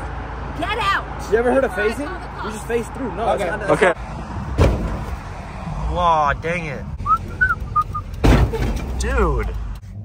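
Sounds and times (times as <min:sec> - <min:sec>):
sharp thump: 0:04.5 - 0:05.2, 0:08.2 - 0:08.9.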